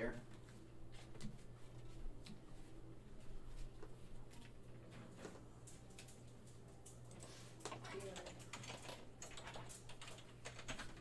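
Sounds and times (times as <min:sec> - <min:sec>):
computer keyboard typing: 0:05.6 - 0:11.0.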